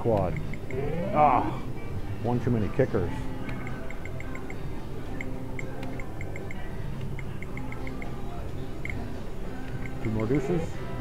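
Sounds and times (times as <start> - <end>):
casino background din: 0.0 - 11.0.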